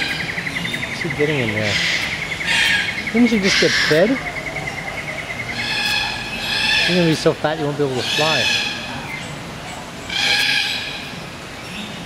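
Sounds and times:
parrot raspy screech: 0:03.4 - 0:04.0.

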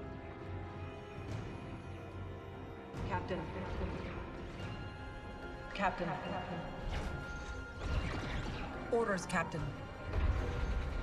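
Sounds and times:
tense film score: 0:00.0 - 0:11.0.

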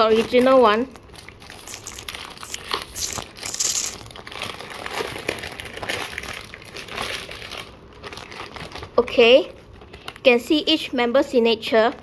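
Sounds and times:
plastic wrapper crinkling: 0:00.0 - 0:10.7.

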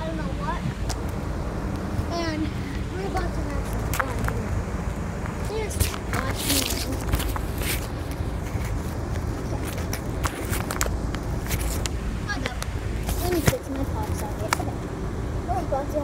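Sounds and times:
faint voices: 0:00.0 - 0:10.7, 0:12.1 - 0:16.0
steady low rumble: 0:00.0 - 0:16.0.

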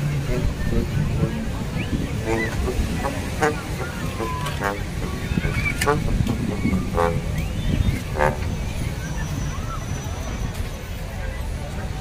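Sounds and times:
chatter of many voices: 0:00.0 - 0:12.0
surf: 0:00.0 - 0:12.0
wind: 0:00.0 - 0:12.0.

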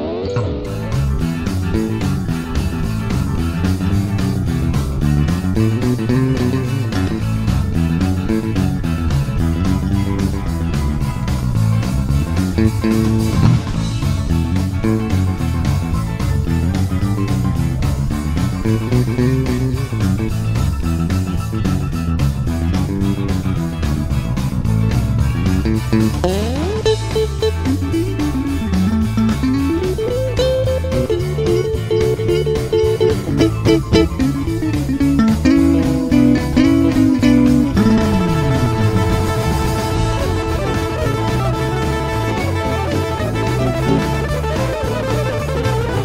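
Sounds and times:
bass guitar playing low notes: 0:00.0 - 0:46.0
other guitars: 0:00.0 - 0:46.0
steady beat: 0:00.7 - 0:46.0.

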